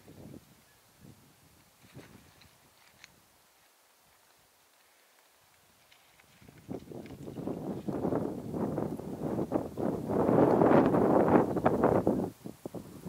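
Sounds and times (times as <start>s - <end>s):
wind buffeting microphone: 6.3s - 13.0s.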